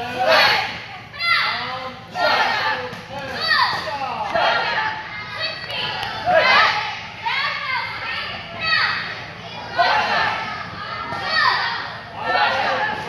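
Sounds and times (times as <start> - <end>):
children calling out and chattering: 0.0 - 13.0.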